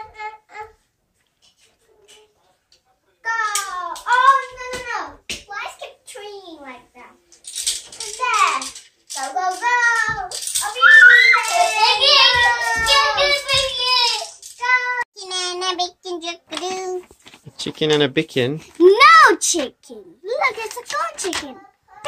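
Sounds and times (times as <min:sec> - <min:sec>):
young children squealing and shouting: 0:09.6 - 0:15.1.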